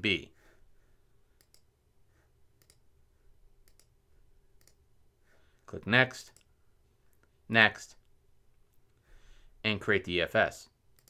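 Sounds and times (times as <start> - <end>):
faint computer mouse clicks: 1.4 - 1.7, 2.6 - 2.8, 3.6 - 3.9, 4.6 - 4.8.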